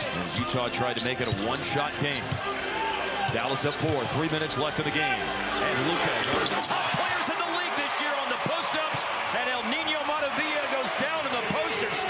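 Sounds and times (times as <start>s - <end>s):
sneakers squeaking: 0.0s - 7.0s
arena crowd din: 0.0s - 12.0s.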